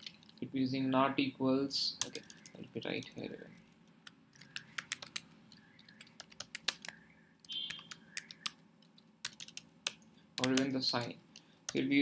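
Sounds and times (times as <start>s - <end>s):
typing on computer keyboard: 4.3s - 8.6s, 9.2s - 10.8s.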